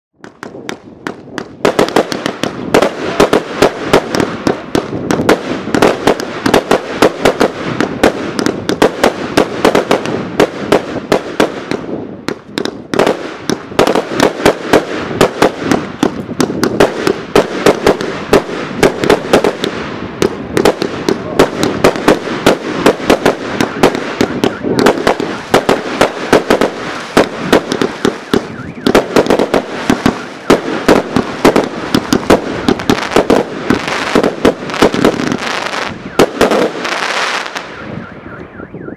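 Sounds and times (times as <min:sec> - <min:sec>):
fireworks crackle: 0:00.2 - 0:38.0
fireworks launches and bursts: 0:00.2 - 0:38.0.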